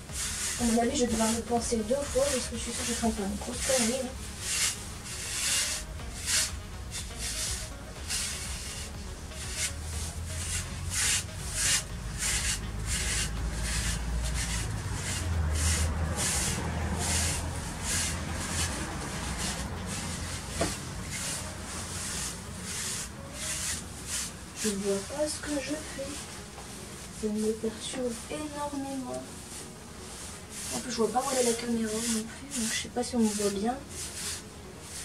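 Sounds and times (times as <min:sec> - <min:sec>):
low rumble: 0:00.0 - 0:28.3
brush scratching over coat: 0:00.0 - 0:35.0.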